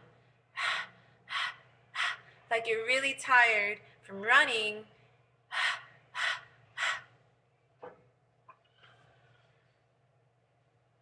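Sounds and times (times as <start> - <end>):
woman panting breathy sounds: 0.6 - 2.5, 5.5 - 7.1.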